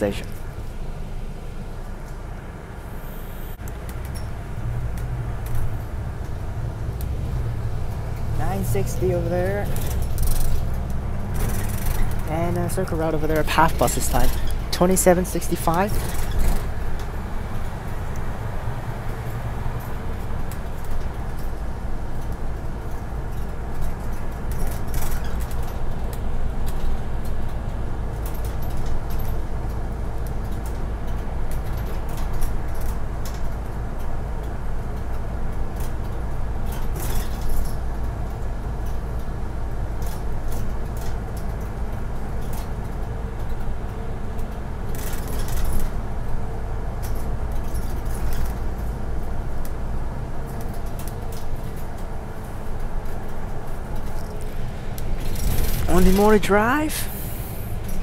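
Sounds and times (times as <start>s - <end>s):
bus engine and road rumble: 0.0s - 58.0s.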